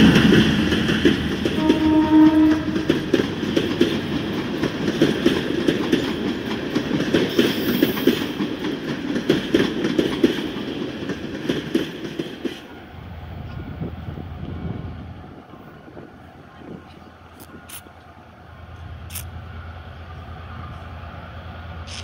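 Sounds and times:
train wheels clattering on rails: 0:00.0 - 0:12.8.

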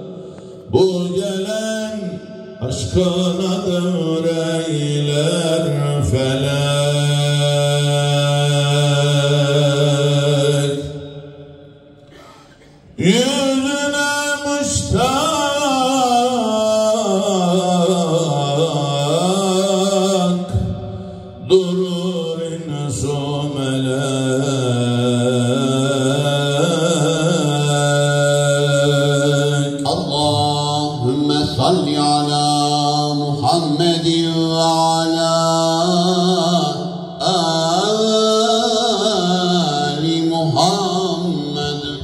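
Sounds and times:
man chanting into microphone: 0:00.0 - 0:42.0.

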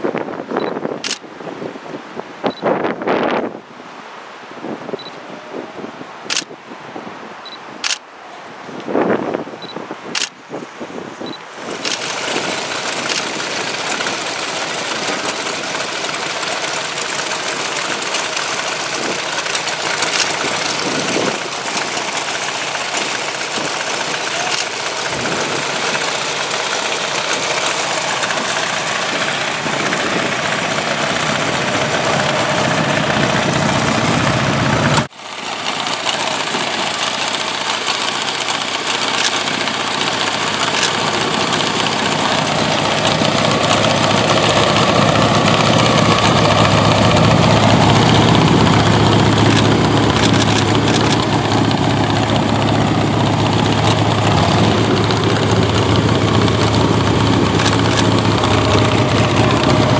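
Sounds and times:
motorcycle engines idling: 0:11.5 - 0:59.9.

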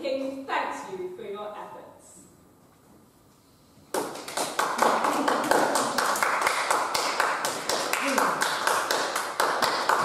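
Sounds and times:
audience applause: 0:04.2 - 0:10.0.

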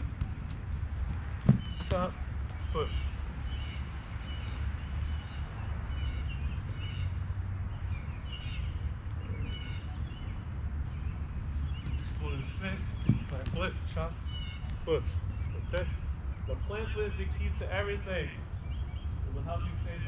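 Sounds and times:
soccer ball being kicked: 0:00.0 - 0:02.7, 0:11.7 - 0:14.0
small birds chirping: 0:00.0 - 0:20.0
steady low rumble: 0:00.0 - 0:20.0.

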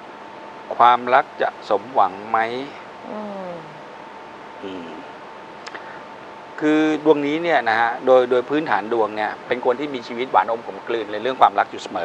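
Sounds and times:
man humming thoughtfully: 0:03.0 - 0:03.8.

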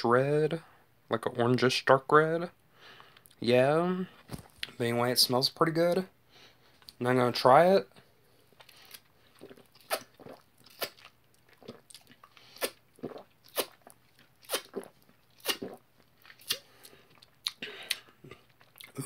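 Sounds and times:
person gulping drink: 0:08.6 - 0:19.0.

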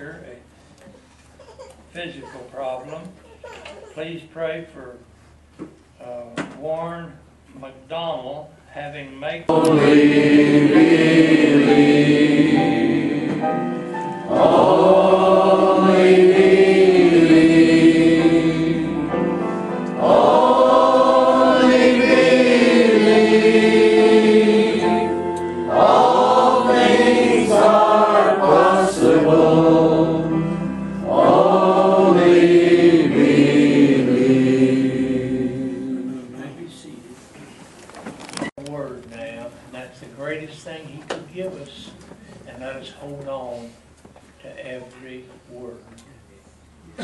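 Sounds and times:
congregation singing: 0:09.5 - 0:37.0.

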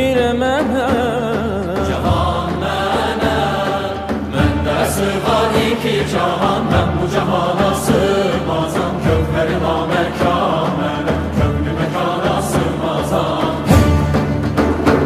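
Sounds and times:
man singing lead: 0:00.0 - 0:13.7
frame drum strokes: 0:00.6 - 0:15.0
choir singing: 0:01.8 - 0:15.0
traditional instrument orchestra: 0:01.8 - 0:15.0.

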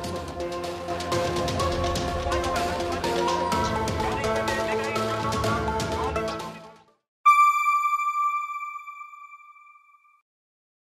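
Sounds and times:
bright electronic chime: 0:07.3 - 0:10.2.

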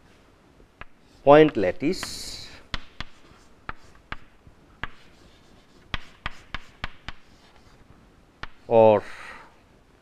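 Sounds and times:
chalk tapping on chalkboard: 0:00.8 - 0:07.8, 0:08.4 - 0:08.6.

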